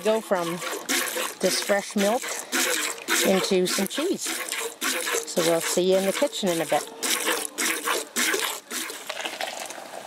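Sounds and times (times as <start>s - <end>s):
milk squirting into metal bowl: 0.0s - 9.8s
milk stream pouring: 0.0s - 10.0s.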